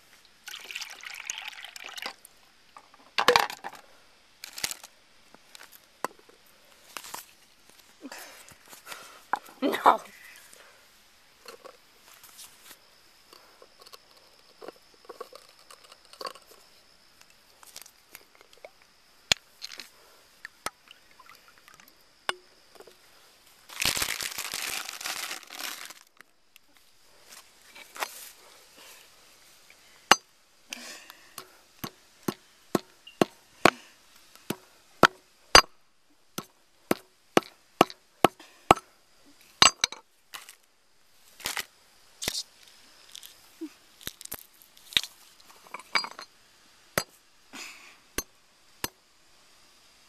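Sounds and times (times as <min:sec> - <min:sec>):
hammer striking paving stones: 0:31.4 - 0:33.8, 0:34.5 - 0:35.7, 0:36.4 - 0:38.8.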